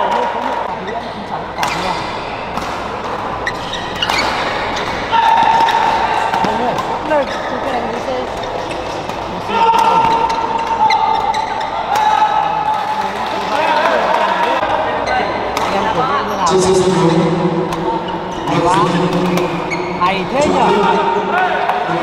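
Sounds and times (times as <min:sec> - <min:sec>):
spectators' voices: 0:00.0 - 0:22.0
shoes squeaking on court floor: 0:00.8 - 0:12.0, 0:16.6 - 0:20.7.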